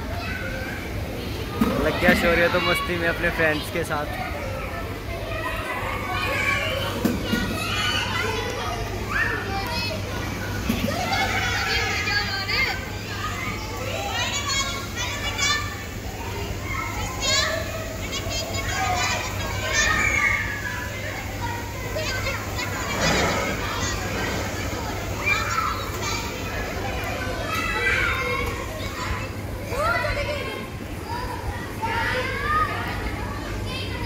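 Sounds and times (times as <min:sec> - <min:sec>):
children calling and squealing: 0:00.0 - 0:34.0.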